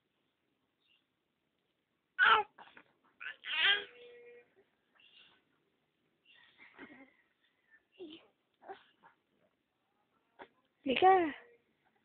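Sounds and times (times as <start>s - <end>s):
baby fussing cry: 2.2s - 2.6s, 3.2s - 4.2s.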